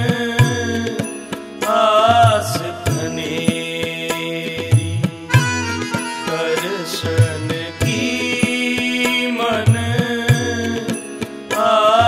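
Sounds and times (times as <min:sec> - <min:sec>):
tabla strokes: 0:00.0 - 0:12.0
harmoniums holding a melody: 0:00.4 - 0:12.0.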